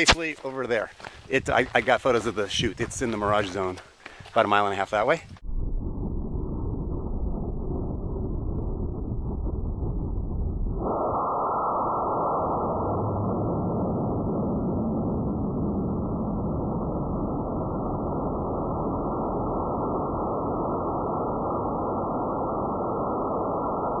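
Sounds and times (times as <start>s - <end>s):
rocket motor deep rush: 5.5s - 24.0s.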